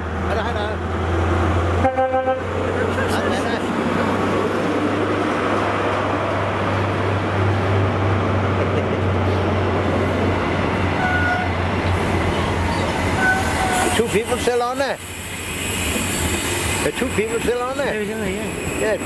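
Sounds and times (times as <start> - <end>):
diesel engine hum: 0.0 - 13.1
train rolling rumble: 0.0 - 19.0.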